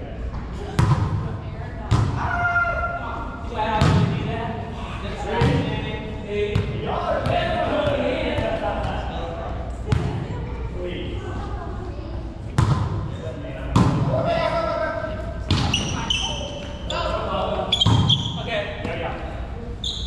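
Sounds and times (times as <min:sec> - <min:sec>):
short high squeaks: 0:17.7 - 0:18.4, 0:19.8 - 0:20.0.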